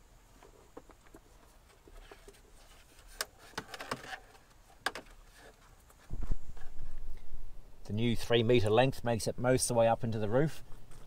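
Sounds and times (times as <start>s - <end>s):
faint clicks and rustles: 0.0s - 7.4s, 10.5s - 11.0s
low rumble with thuds: 6.1s - 7.6s.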